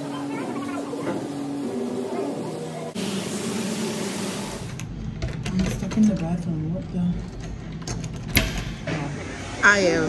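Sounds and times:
metal doorknob clicks: 7.2s - 8.8s.

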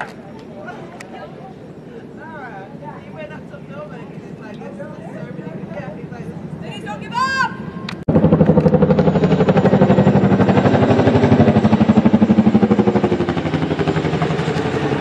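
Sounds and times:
helicopter rotors chopping: 2.7s - 15.0s
high-pitched shout: 7.0s - 7.7s.

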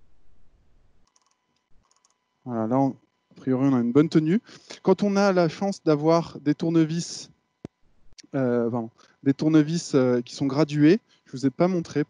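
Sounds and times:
surgical instruments clicking: 1.0s - 2.2s.

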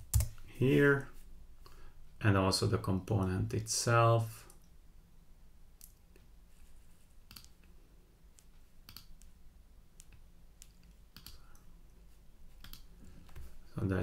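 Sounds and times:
low steady hum: 0.0s - 14.0s
computer mouse clicks: 7.3s - 7.6s, 8.4s - 9.3s, 10.0s - 11.7s, 12.6s - 12.9s.

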